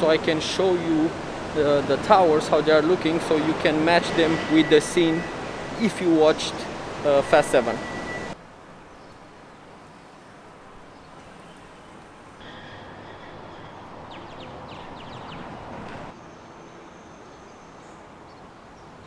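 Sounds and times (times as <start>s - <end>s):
distant traffic: 0.0s - 19.0s.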